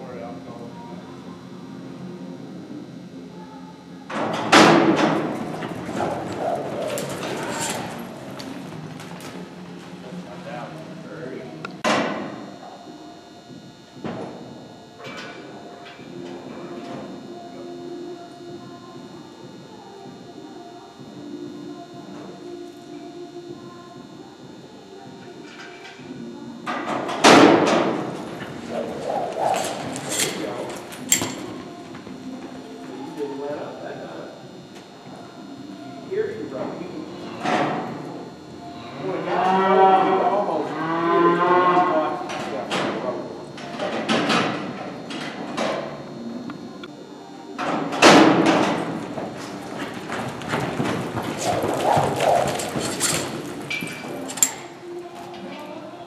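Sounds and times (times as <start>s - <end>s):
cattle mooing: 5.4s - 8.8s, 28.4s - 30.9s, 36.8s - 42.3s, 49.0s - 54.6s.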